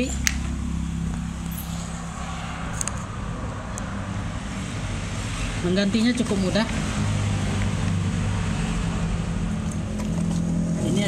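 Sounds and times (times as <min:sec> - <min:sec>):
low engine hum: 0:00.0 - 0:11.0
traffic-like noise wash: 0:00.0 - 0:11.0.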